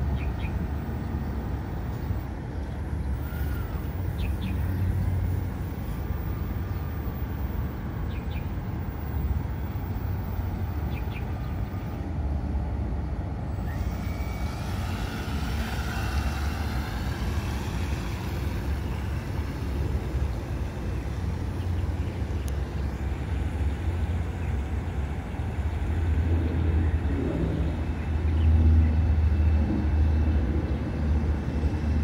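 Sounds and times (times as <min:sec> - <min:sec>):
model boat motor whining: 0:03.1 - 0:06.6, 0:13.4 - 0:24.2
steady low rumble: 0:03.9 - 0:32.0.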